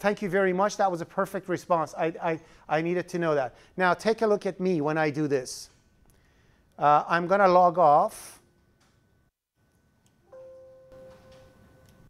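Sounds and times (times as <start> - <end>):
soft system alert chime: 10.3 - 12.0.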